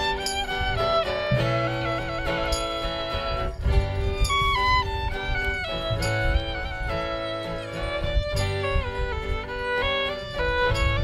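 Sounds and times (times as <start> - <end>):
fiddle melody: 0.0 - 11.0
strummed acoustic guitar: 0.0 - 11.0.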